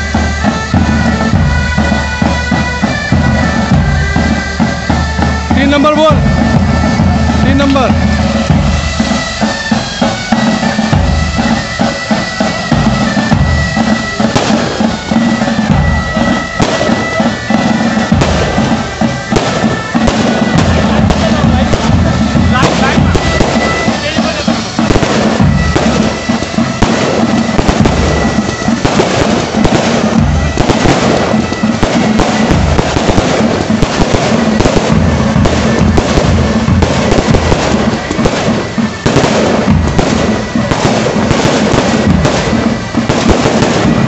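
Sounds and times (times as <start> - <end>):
band's high melody line: 0.0 - 44.0
dhol drumming: 0.0 - 44.0.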